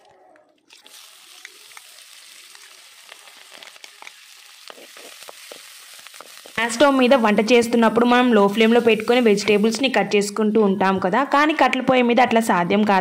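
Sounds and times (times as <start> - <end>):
oil crackles: 0.0 - 9.9
peanuts sizzling in hot oil: 0.7 - 10.3.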